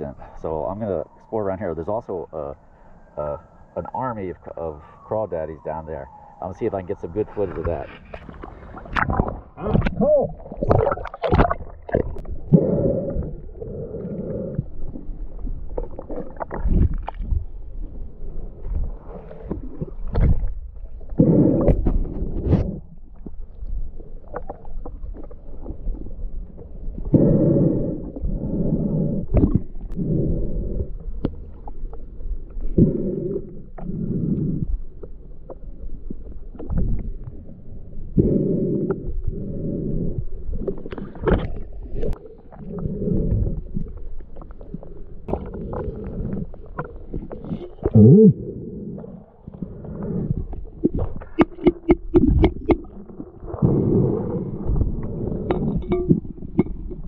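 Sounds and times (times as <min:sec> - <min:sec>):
breathing through snorkel underwater: 0:12.0 - 0:15.2, 0:21.1 - 0:22.9, 0:27.0 - 0:31.2, 0:32.7 - 0:34.8, 0:38.2 - 0:44.0, 0:44.8 - 0:57.0.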